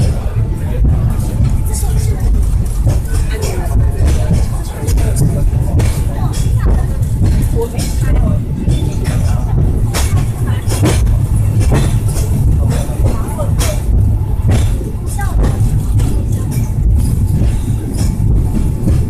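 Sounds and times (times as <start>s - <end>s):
funicular car rumbling on rails: 0.0s - 19.0s
murmur of voices: 0.0s - 19.0s.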